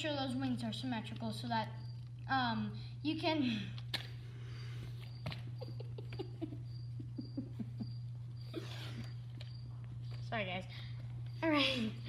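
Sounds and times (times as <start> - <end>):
steady low hum: 0.0 - 12.0
child giggling: 5.5 - 9.2.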